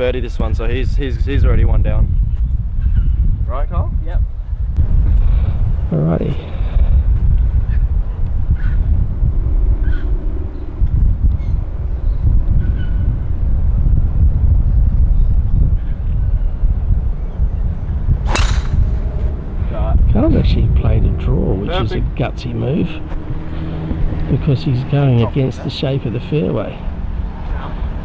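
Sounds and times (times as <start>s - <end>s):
wind buffeting microphone: 0.0s - 28.0s
voices: 5.9s - 6.6s, 19.7s - 27.8s
golf club striking ball: 18.2s - 19.2s.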